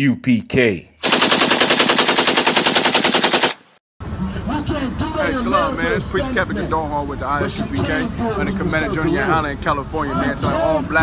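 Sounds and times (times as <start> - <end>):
rapid machine-gun bangs: 1.0 - 3.8.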